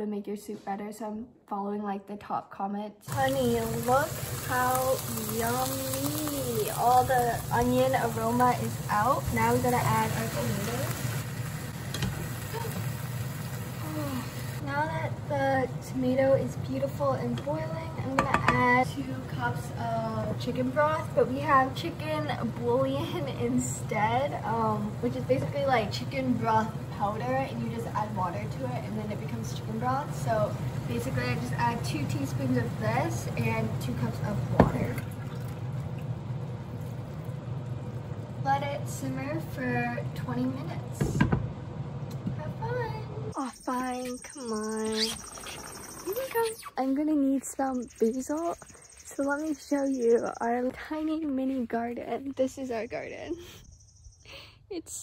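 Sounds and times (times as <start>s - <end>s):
tomatoes sizzling in a pan: 3.0s - 46.5s
steady low hum: 3.1s - 55.0s.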